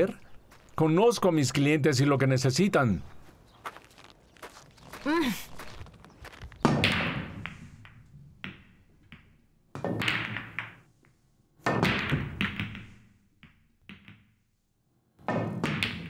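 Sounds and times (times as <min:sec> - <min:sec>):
cue striking billiard balls: 0:06.7 - 0:14.3.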